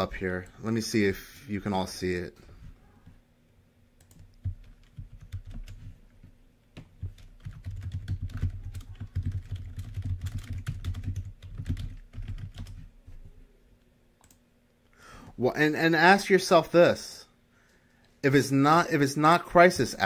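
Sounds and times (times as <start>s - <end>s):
computer keyboard typing: 4.0s - 6.0s, 6.8s - 12.9s, 14.2s - 14.4s.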